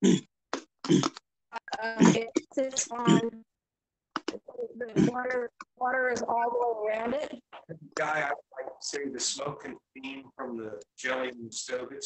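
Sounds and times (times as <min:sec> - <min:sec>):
woman speaking hesitantly: 0:01.6 - 0:03.4, 0:04.3 - 0:07.4.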